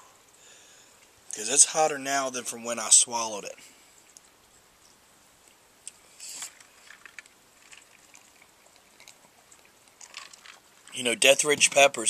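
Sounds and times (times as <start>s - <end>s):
hissing breath: 6.0s - 6.6s.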